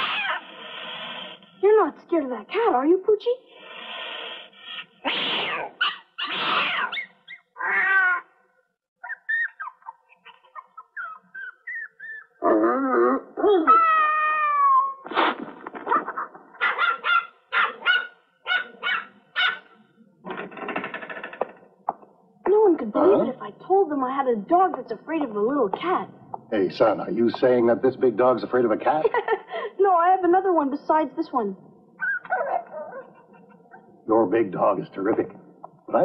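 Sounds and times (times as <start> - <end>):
cartoon dog whimpering and yelping: 0.0 - 0.5, 5.0 - 8.3, 9.0 - 15.0, 32.0 - 33.1
cartoon cat hissing: 0.0 - 1.5, 3.5 - 7.0.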